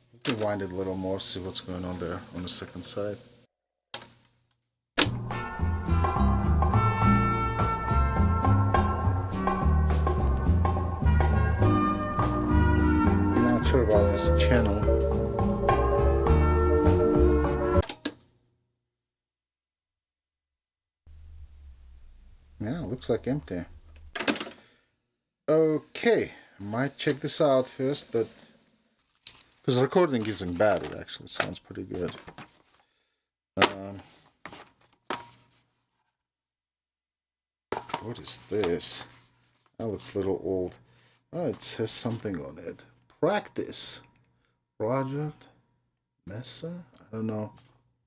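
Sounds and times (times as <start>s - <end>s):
tape deck click: 5.0s - 5.2s
instrumental music from tape deck: 5.0s - 17.8s.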